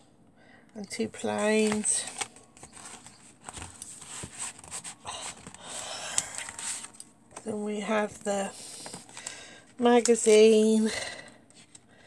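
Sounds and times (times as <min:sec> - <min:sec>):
paper rustling and sliding: 0:01.6 - 0:05.6.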